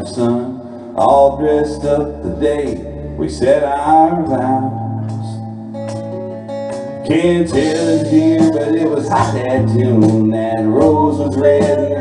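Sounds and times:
man singing: 0.0s - 5.5s, 7.0s - 12.0s
country ballad by live band: 0.0s - 12.0s.

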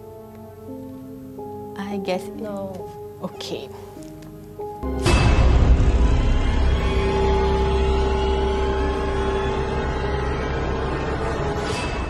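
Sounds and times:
held drone tone: 4.8s - 12.0s.

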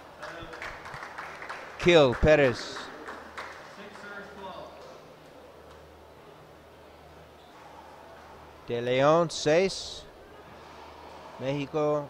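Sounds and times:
faint voices: 3.8s - 12.0s.

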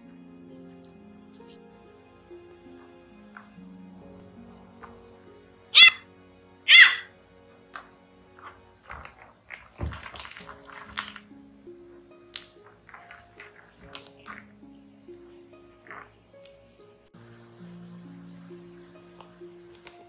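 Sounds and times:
faint puppy squeaks: 5.8s - 6.0s, 6.7s - 7.1s
puppy yipping: 5.8s - 6.1s, 6.7s - 7.1s
puppy scuffling: 7.7s - 11.3s.

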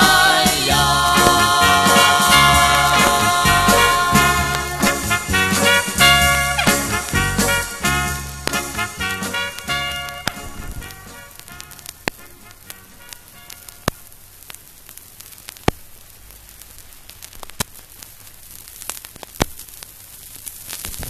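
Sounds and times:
vinyl scratch clicks: 0.0s - 4.8s, 9.3s - 14.6s, 20.6s - 21.0s
song notes: 0.0s - 13.6s
vinyl hiss and crackle: 0.0s - 21.0s.

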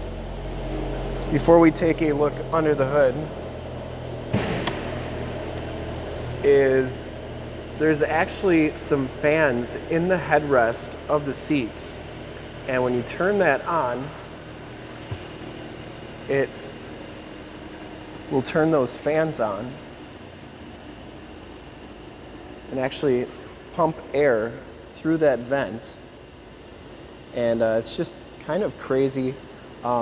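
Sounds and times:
car engine idling: 0.0s - 30.0s
ventilation fans blowing: 0.0s - 30.0s.

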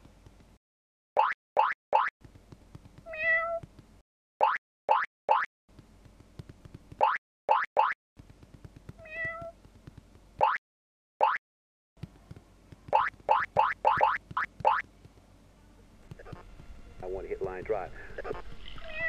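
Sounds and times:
cartoon cat meowing: 3.1s - 3.6s, 9.0s - 9.5s.

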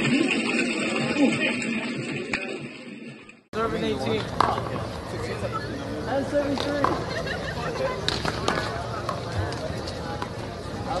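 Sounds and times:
people talking: 0.0s - 2.7s, 3.6s - 11.0s.

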